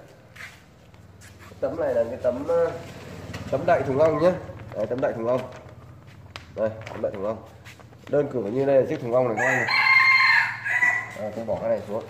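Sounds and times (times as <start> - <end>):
rooster crowing: 9.3 - 11.7.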